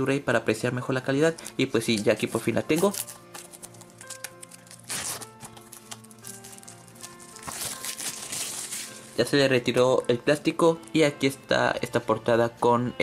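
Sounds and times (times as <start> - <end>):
soft background music: 0.0 - 13.0
plastic wrap crinkling and tearing: 1.4 - 9.2.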